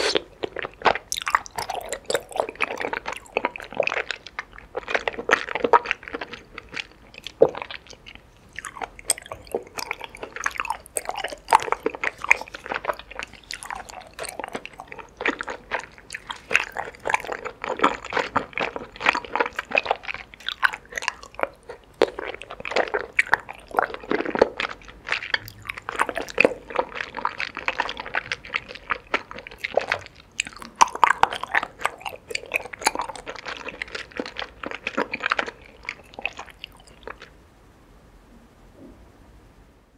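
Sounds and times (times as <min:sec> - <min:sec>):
chewing with mouth clicks: 0:00.0 - 0:37.4.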